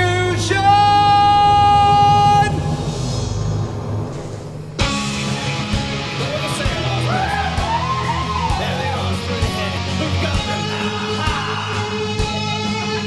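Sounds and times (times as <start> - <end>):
singer holding long high note: 0.0 - 4.0
bass guitar: 0.0 - 4.1, 4.7 - 13.0
electric guitar: 4.8 - 13.0
rock band playing: 4.8 - 13.0.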